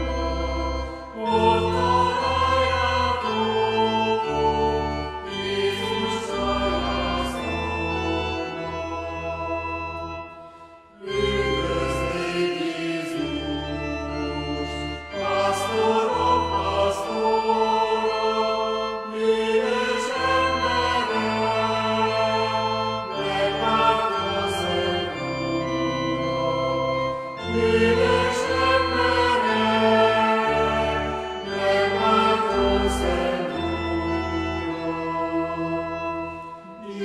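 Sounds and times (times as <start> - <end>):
choir singing: 0.0 - 37.0
organ chords: 0.0 - 37.0.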